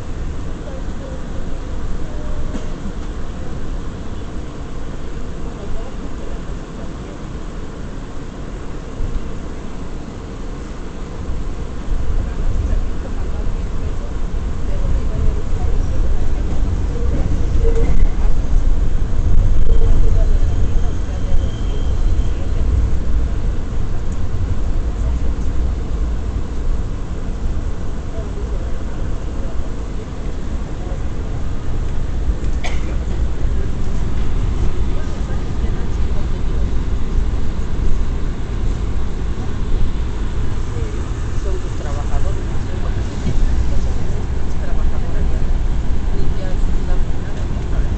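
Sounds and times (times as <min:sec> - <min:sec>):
subway car wheels rumbling on rail: 0:00.0 - 0:47.9.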